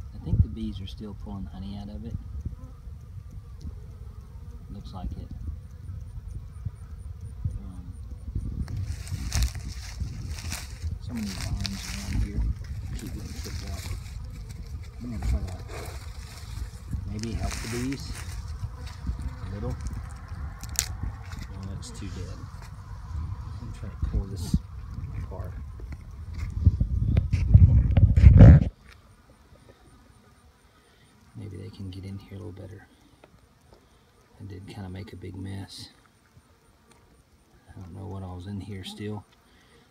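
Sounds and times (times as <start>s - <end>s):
wind rumbling on microphone: 0.0s - 28.8s
uneven rustling hiss: 0.0s - 39.9s
honeycomb crunching and crackling: 8.6s - 21.6s.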